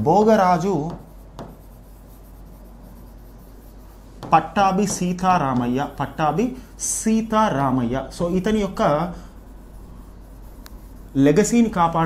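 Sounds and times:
low steady hum: 0.0s - 12.0s
pen scratching on screen: 0.5s - 12.0s.

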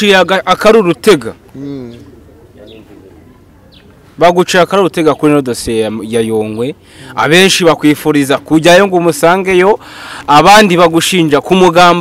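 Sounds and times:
small birds chirping: 0.0s - 10.4s
dove cooing: 1.4s - 4.2s.

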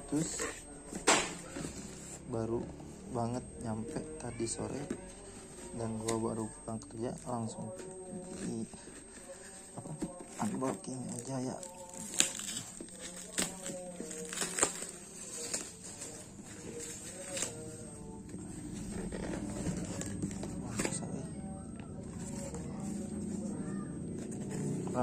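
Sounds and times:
faint background voices: 0.0s - 25.0s.

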